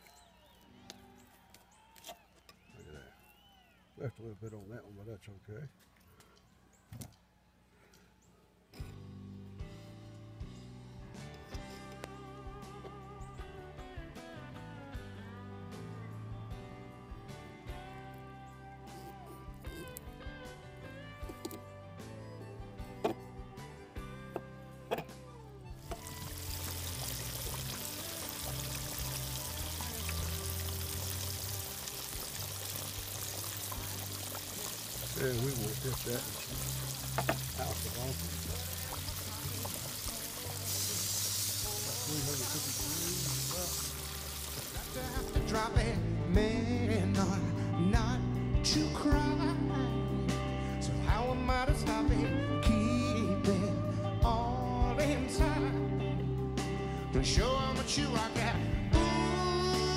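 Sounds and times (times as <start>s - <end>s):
background music: 8.8s - 59.9s
fish deep-frying in oil: 25.8s - 45.4s.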